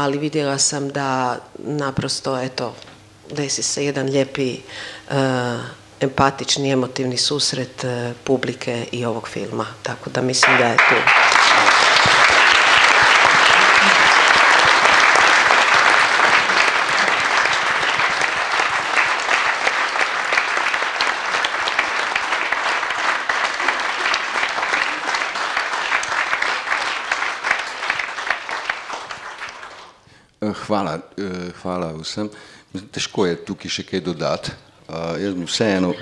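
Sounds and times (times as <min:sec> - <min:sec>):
audience applauding: 0:10.4 - 0:30.0.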